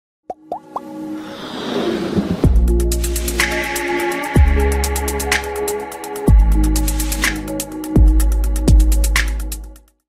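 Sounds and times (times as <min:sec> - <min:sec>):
whoosh: 0:01.1 - 0:03.4.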